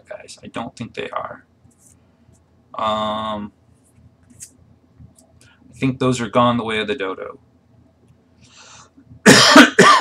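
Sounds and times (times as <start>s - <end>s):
man coughing: 9.2s - 10.0s.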